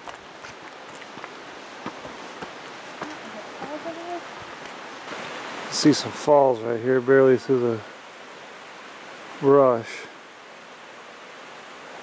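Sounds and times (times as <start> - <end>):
footsteps on dirt trail: 0.0 - 5.6
rushing waterfall: 0.0 - 12.0.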